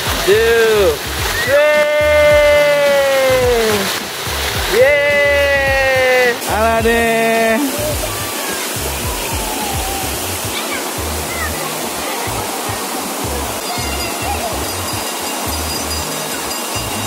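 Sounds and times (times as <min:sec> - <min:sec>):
music bass beat: 0:00.0 - 0:11.6, 0:13.2 - 0:16.1
water rushing down a slide: 0:00.0 - 0:17.0.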